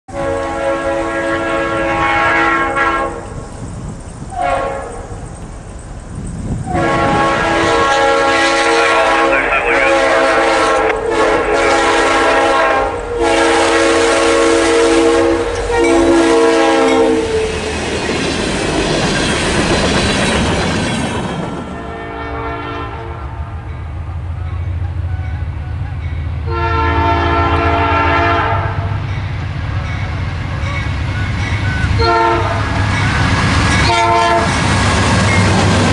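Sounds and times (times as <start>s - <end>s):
locomotive air horn blasts: 0.1s - 3.4s, 4.3s - 5.1s, 6.7s - 17.4s, 21.7s - 23.5s, 26.4s - 28.9s, 31.7s - 32.8s, 33.8s - 34.6s
train rumble and wheel noise: 0.1s - 35.9s.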